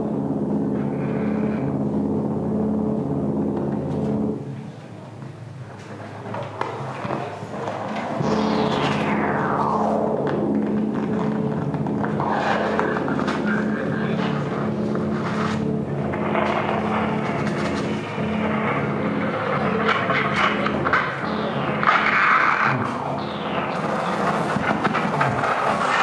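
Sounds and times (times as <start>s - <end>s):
bright harsh noise layer: 0.0s - 26.0s
dense low drone: 0.0s - 26.0s.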